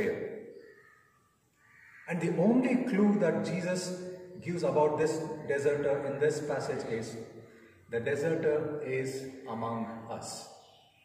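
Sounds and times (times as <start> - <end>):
man preaching: 0.0 - 0.4, 2.1 - 10.6.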